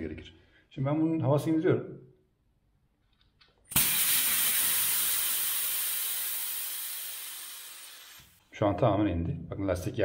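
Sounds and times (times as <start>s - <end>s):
air hissing out of bike tyre: 3.7s - 8.4s.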